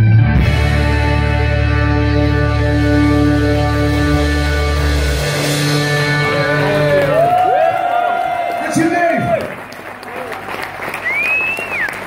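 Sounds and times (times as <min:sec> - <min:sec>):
rock song ending: 0:00.0 - 0:07.6
audience applauding and cheering: 0:05.8 - 0:12.0
person whistling: 0:11.0 - 0:12.0.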